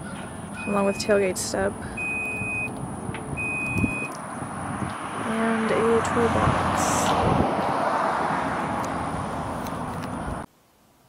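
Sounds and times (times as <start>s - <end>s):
high electronic warning beep: 0.6s - 1.3s, 1.9s - 4.1s.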